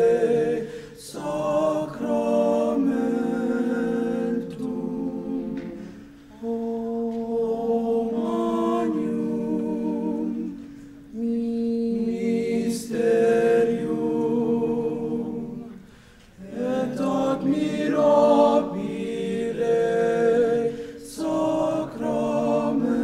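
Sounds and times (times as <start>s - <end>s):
men's choir singing: 0.0s - 23.0s.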